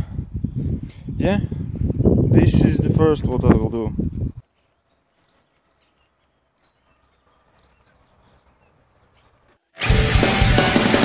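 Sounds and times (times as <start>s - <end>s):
faint high bird chirps: 4.4s - 9.5s.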